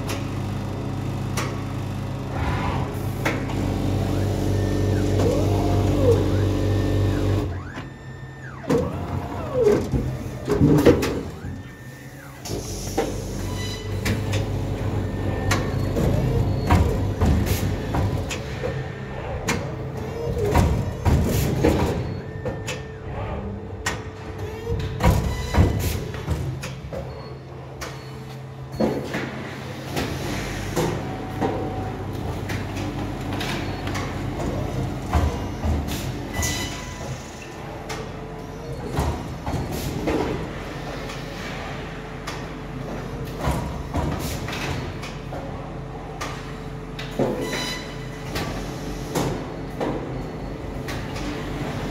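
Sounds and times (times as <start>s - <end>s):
machine hum: 0.0s - 25.4s.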